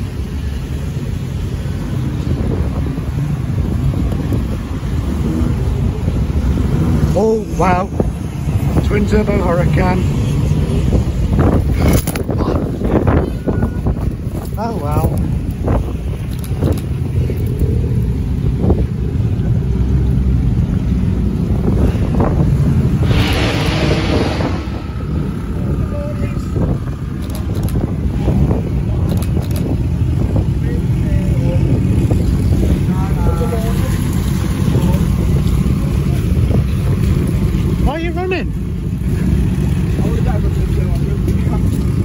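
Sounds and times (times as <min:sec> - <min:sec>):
wind buffeting microphone: 0:00.0 - 0:37.9
car engine rumbling: 0:00.0 - 0:42.0.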